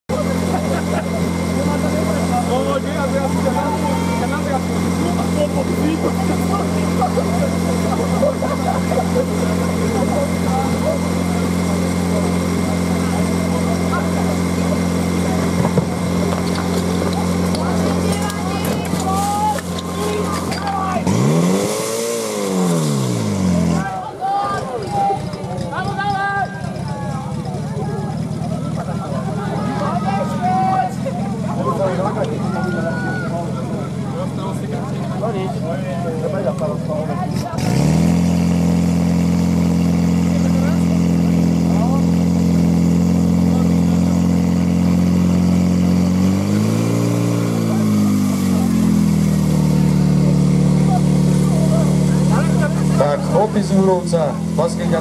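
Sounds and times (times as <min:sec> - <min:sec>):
pump engine idling and revving: 0:00.0 - 0:55.0
people shouting: 0:03.3 - 0:04.5, 0:18.0 - 0:21.4, 0:23.8 - 0:28.2, 0:32.4 - 0:33.6.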